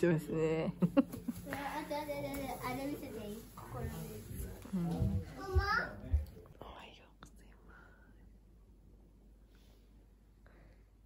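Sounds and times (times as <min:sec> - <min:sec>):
person whispering: 0:06.6 - 0:08.2.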